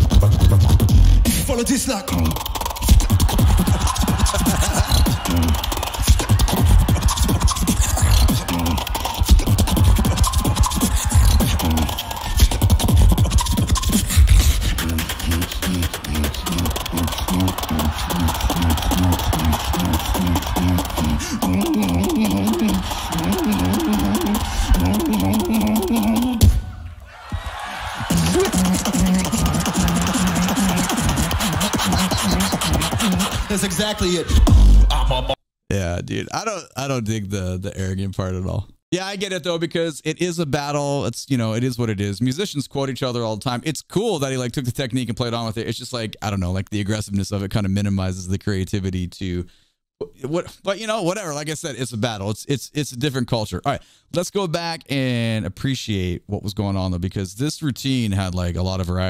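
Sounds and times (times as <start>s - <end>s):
beatboxing into microphone: 0.0s - 35.4s.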